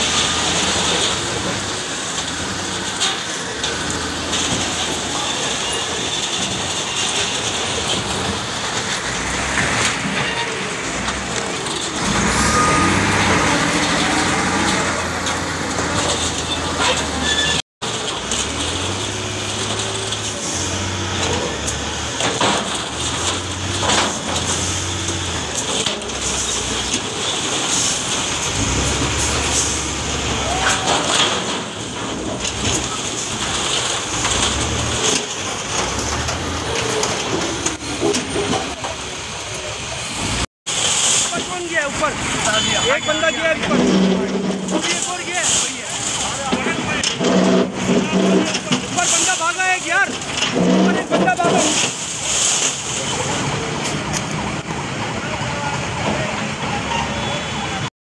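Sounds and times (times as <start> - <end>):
debris clattering: 0.0 - 56.9
diesel engine rumbling: 0.0 - 57.9
people shouting: 30.3 - 31.1.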